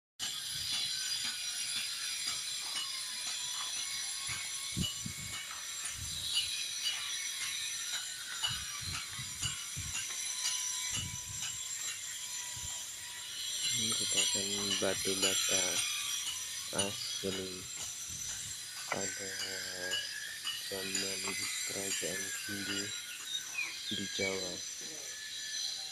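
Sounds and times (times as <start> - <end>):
insect chirring: 0.4 - 25.9.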